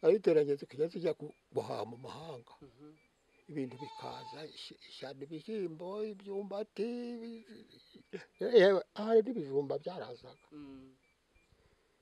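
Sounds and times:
elderly man talking: 0.0 - 2.8, 3.4 - 10.5.

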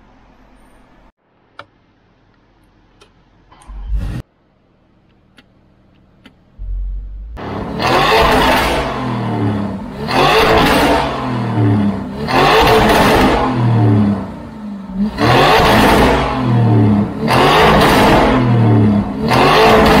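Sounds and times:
car engine revving: 3.6 - 4.2, 6.0 - 20.0.

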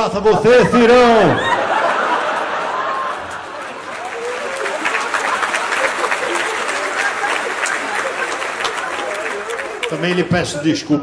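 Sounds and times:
audience applauding: 1.4 - 10.6
voices: 3.4 - 11.0.

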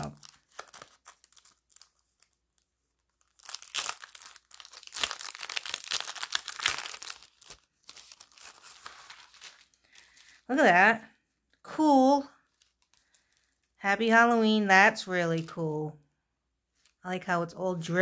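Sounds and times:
plastic sleeve crinkling: 0.0 - 10.5, 12.4 - 13.8, 16.7 - 17.1.

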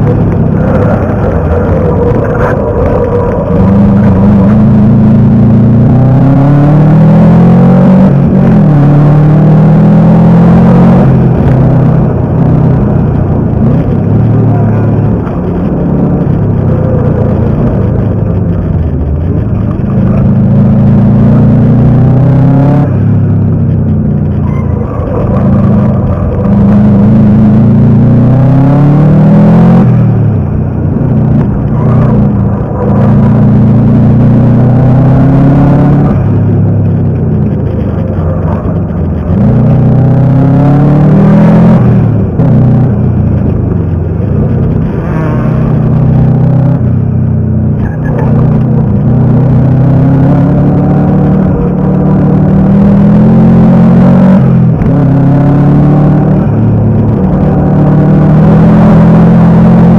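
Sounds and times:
race car engine accelerating: 0.0 - 59.9.

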